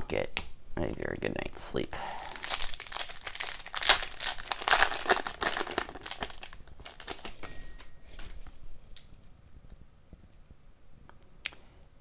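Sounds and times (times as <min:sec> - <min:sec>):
foil wrapper crinkling: 0:02.2 - 0:08.6.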